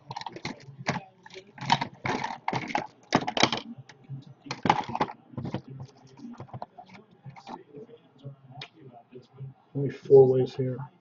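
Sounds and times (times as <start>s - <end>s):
clicking and rustling on a desk: 0.0s - 7.6s.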